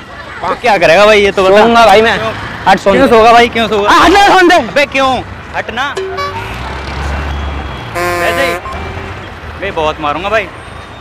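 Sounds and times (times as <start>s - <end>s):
traffic engines rumbling: 0.0s - 11.0s
vehicle horn honking: 6.0s - 6.8s, 7.8s - 8.8s.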